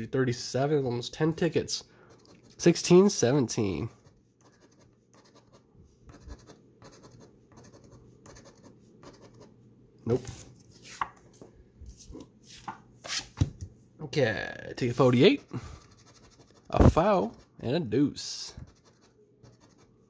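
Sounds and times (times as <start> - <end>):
coin scratching a ticket: 4.4 - 9.5, 15.4 - 17.5, 18.7 - 19.9.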